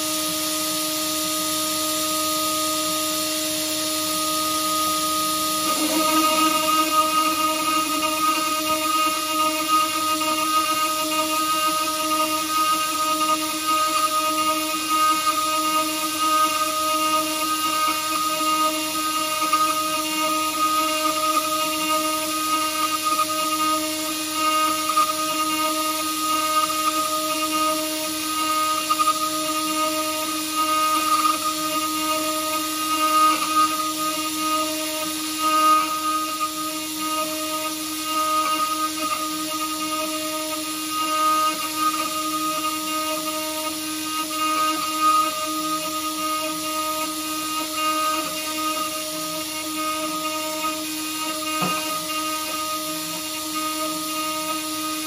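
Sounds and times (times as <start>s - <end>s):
router spindle whine: 0.0s - 55.0s
end mill cutting steel: 3.0s - 12.6s.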